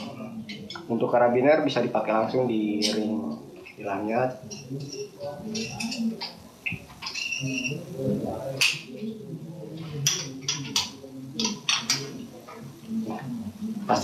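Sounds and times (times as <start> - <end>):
faint talking over video call: 0.0 - 14.0.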